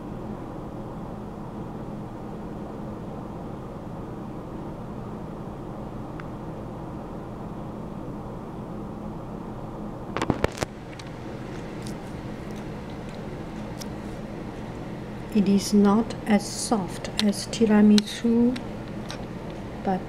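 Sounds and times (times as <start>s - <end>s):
low hum and hiss: 0.0s - 20.0s.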